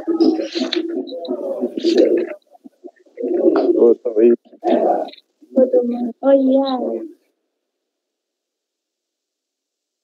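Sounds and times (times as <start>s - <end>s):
muffled person speaking: 0.0s - 7.1s.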